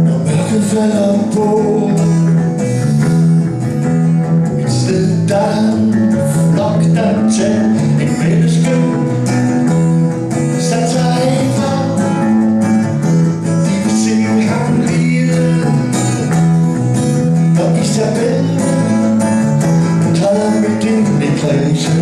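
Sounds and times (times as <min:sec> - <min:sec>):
man singing: 0:00.0 - 0:03.5, 0:04.6 - 0:12.6, 0:13.4 - 0:22.0
acoustic guitar strumming: 0:00.0 - 0:22.0
electric guitar: 0:00.0 - 0:22.0.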